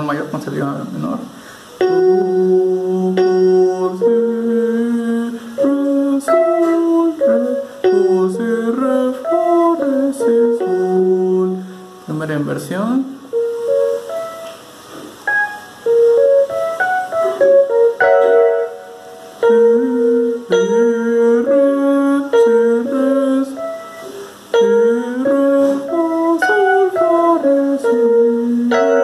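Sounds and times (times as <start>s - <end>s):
electronic keyboard chord: 0.0s - 29.0s.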